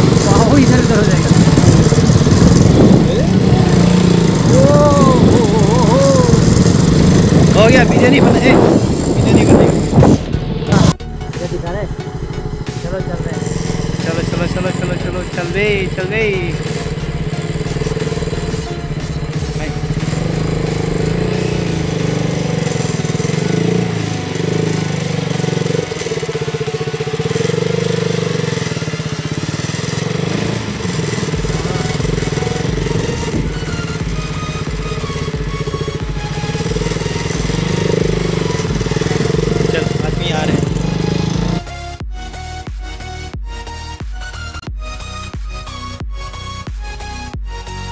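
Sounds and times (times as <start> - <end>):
loud rush of noise: 0.0 - 11.0
motorcycle engine running: 0.0 - 47.9.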